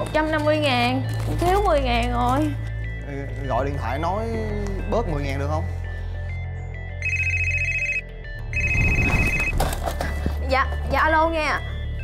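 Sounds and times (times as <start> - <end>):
desk phone ringing: 6.9 - 9.6.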